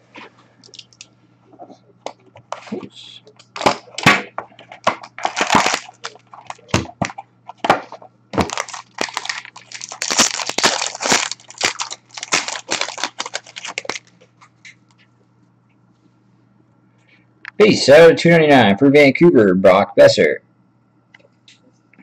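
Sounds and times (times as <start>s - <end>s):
plastic wrapping crinkling: 4.7s - 7.1s, 8.4s - 14.2s.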